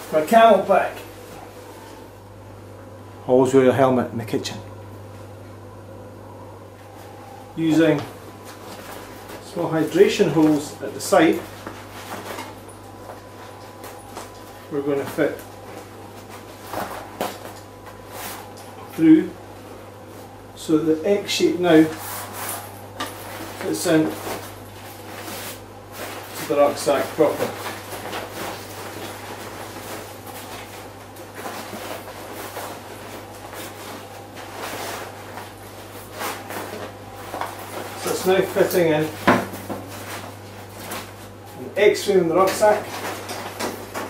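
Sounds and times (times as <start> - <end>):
steady low hum: 0.0 - 44.0
rucksack fabric rustling: 8.3 - 18.6, 21.7 - 41.6.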